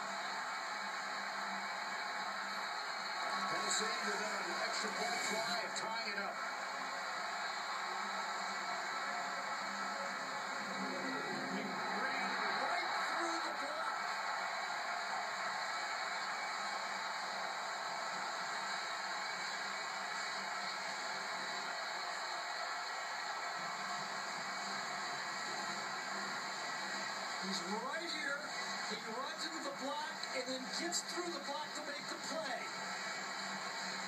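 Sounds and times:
stadium crowd roar: 0.0s - 34.0s.

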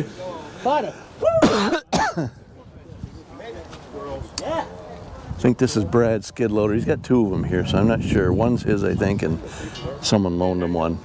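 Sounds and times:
man clearing throat: 1.4s - 2.4s.

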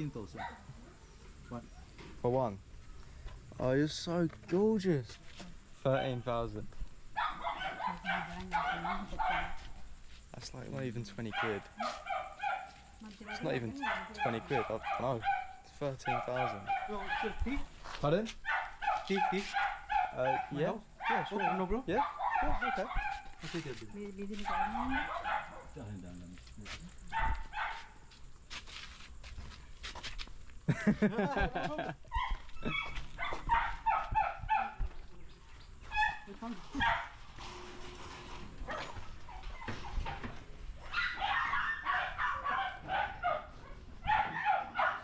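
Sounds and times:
dog barking rapidly: 7.2s - 9.6s, 11.3s - 17.5s, 18.4s - 23.6s, 24.4s - 25.8s, 27.1s - 28.0s, 32.1s - 34.8s, 35.9s - 37.2s, 38.6s - 40.2s, 40.8s - 45.0s.

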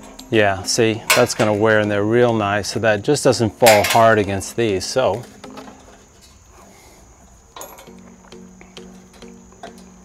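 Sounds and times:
light metallic clinks: 0.0s - 2.0s, 7.5s - 10.0s
plucked string background music: 0.0s - 6.4s, 7.6s - 10.0s.

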